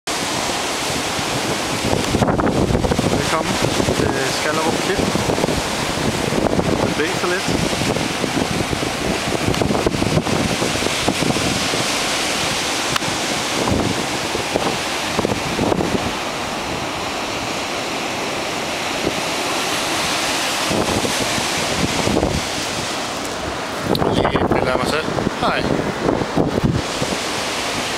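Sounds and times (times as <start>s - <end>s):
sea surf breaking: 0.1s - 27.9s
wind buffeting microphone: 0.1s - 27.9s.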